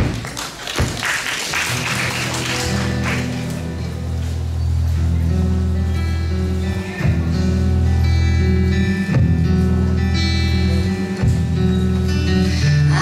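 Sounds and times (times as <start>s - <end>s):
audience applause: 0.0s - 4.1s
acoustic guitar: 1.5s - 13.0s
upright bass: 1.6s - 13.0s.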